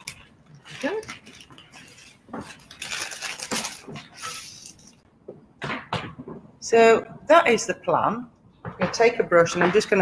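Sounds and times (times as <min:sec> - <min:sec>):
paper rustling and crinkling: 0:00.0 - 0:05.0.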